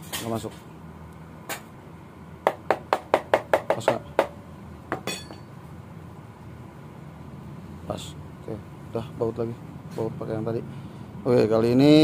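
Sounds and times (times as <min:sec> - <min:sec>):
sharp metal clinks and knocks: 0:05.0 - 0:05.5.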